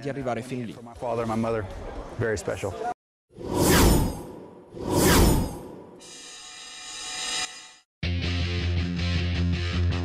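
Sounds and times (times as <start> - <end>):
whoosh sound effect: 3.4 - 6.0.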